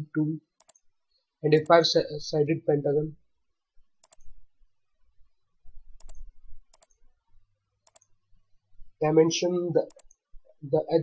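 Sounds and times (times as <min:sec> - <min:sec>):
computer mouse clicks: 0:00.6 - 0:00.9, 0:04.0 - 0:04.4, 0:06.0 - 0:07.1, 0:07.8 - 0:08.2, 0:09.8 - 0:10.3.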